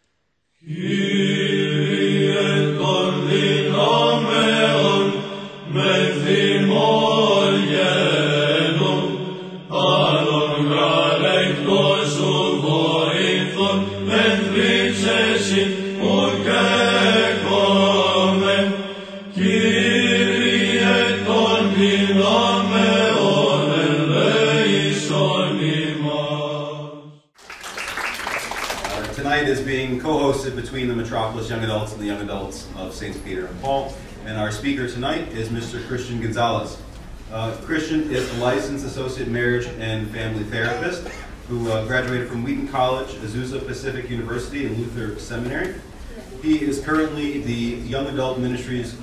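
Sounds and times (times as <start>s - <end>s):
voices chanting: 0.6s - 26.7s.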